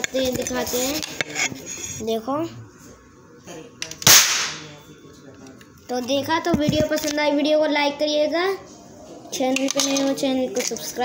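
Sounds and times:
toy gun sharp crack: 3.8s - 4.6s.

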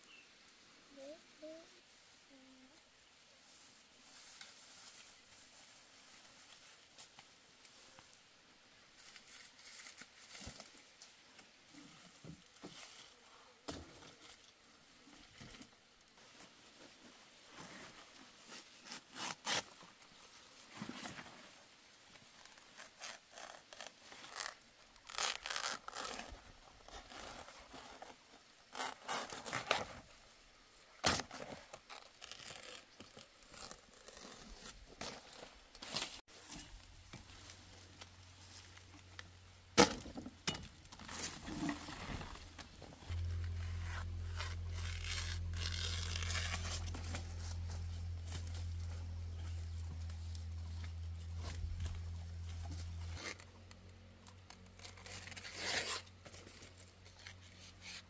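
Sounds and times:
rustling foliage: 0.0s - 58.0s
leaves tearing: 18.5s - 19.9s, 22.3s - 30.0s, 31.0s - 39.3s, 41.0s - 58.0s
steady low hum: 42.2s - 53.2s
machete cutting plant stalks: 43.3s - 48.5s.

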